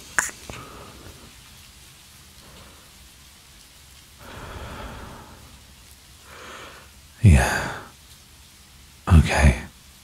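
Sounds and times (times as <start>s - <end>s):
steady rain: 0.0s - 10.0s
breathy exhale: 4.2s - 7.0s.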